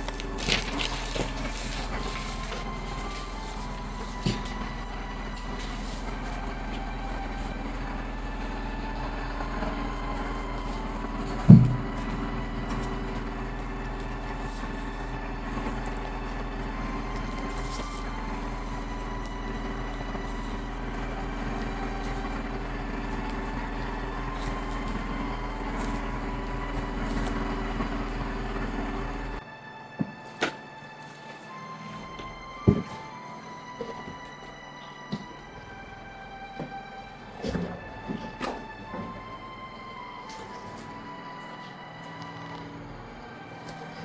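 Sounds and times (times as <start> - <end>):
steady drone of held tones: 0.0 - 44.0.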